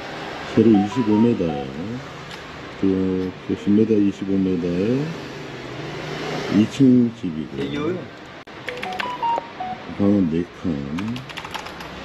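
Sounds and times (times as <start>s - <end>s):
short electronic beeps: 0.7s - 1.8s, 8.7s - 9.9s
keyboard and mouse clicking: 8.7s - 9.4s, 11.0s - 12.0s.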